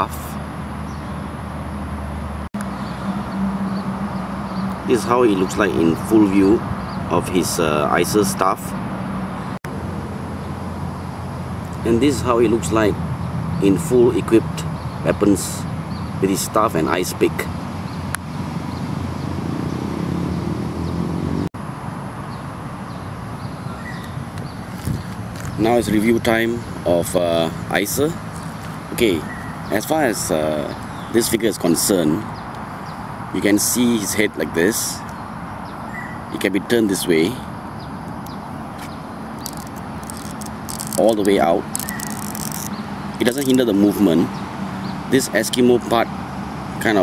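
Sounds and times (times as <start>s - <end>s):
engine hum rising in pitch: 0.0s - 13.8s, 14.4s - 31.2s
outdoor background noise: 0.0s - 47.0s
traffic rumble: 0.0s - 47.0s
plastic toy clicks: 39.4s - 42.7s, 43.3s - 43.6s
plastic toy rattle: 39.4s - 43.6s.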